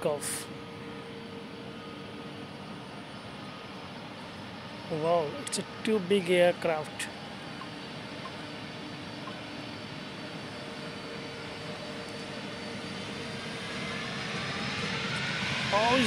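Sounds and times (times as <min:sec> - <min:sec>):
distant jet engine rumble: 0:00.0 - 0:16.0
faint rising jet whine: 0:00.0 - 0:16.0.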